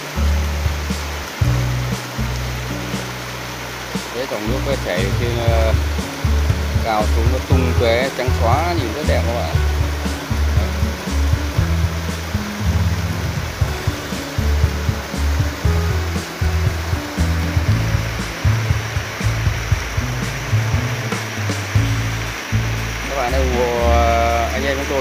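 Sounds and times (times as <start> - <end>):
background music with bass line: 0.0 - 25.0
stream water splashing over rocks: 0.0 - 25.0.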